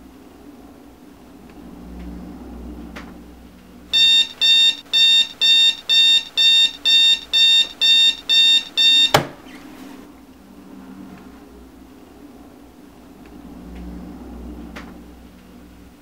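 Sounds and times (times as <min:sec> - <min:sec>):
alarm clock beeping: 0:03.9 - 0:09.2.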